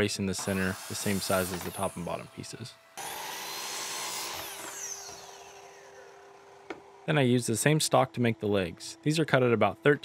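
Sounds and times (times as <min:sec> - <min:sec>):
saw blade winding down: 0:00.3 - 0:07.8.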